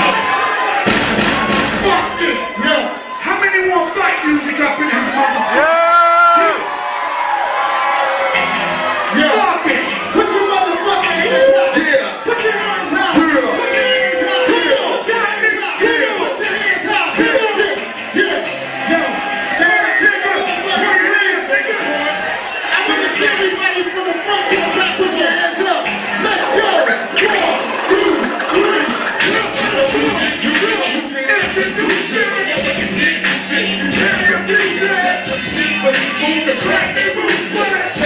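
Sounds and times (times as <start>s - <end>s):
crowd noise: 0.0s - 38.0s
hip-hop music: 0.0s - 38.0s
heavy bass thump: 0.9s - 2.1s
voice over loudspeakers: 9.0s - 38.0s.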